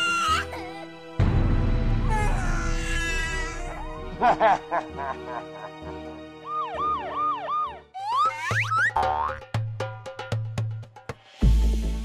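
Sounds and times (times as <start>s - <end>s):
playful background music: 0.0s - 12.0s
cartoon chirps: 8.0s - 8.9s.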